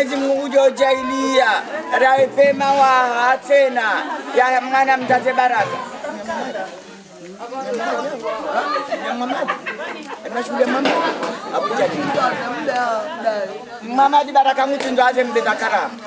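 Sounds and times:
overlapping chatter: 0.0s - 16.0s.

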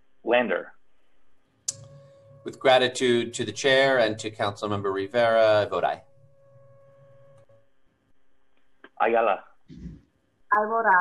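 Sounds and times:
faint steady hum: 0.0s - 11.0s
faint thin tone: 1.7s - 7.8s.

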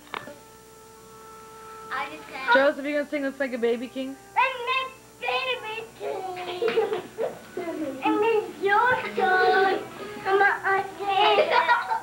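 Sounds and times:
young child singing: 7.8s - 12.0s.

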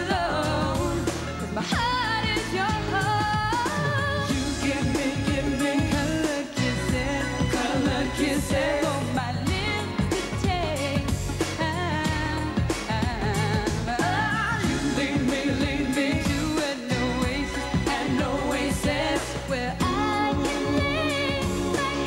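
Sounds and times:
live pop band playing: 0.0s - 22.0s.

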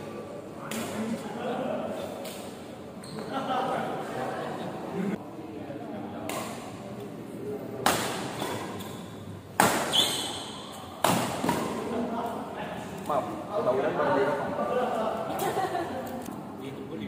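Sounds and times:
rackets striking shuttlecock: 7.8s - 10.3s, 11.0s - 11.8s.

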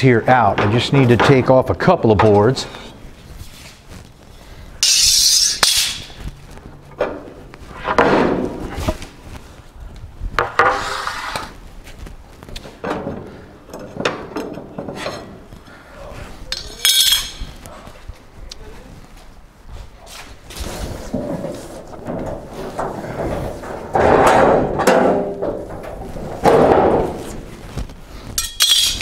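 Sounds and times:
wood scraping on steel: 10.4s - 11.6s
wooden boards knocking: 21.1s - 27.2s.

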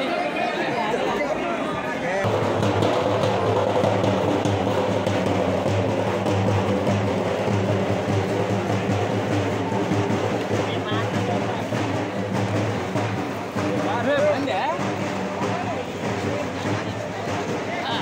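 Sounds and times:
crowd of men talking: 0.0s - 18.0s.

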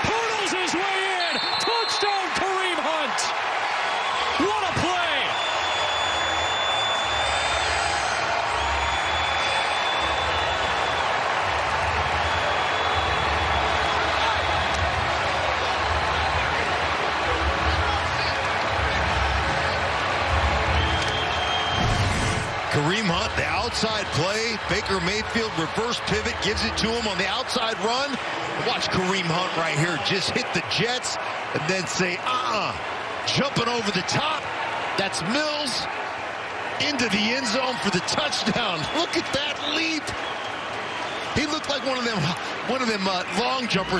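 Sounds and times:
stadium crowd noise: 0.0s - 43.9s.

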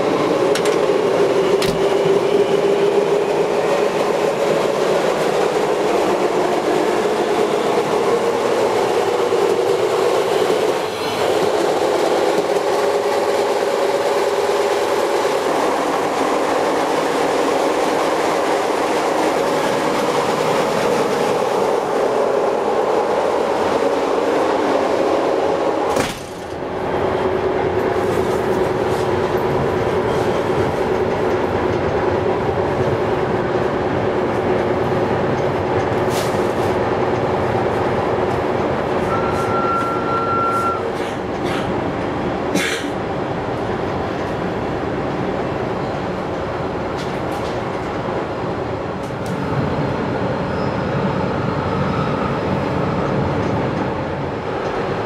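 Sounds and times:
train rumble inside carriage: 0.0s - 55.0s.

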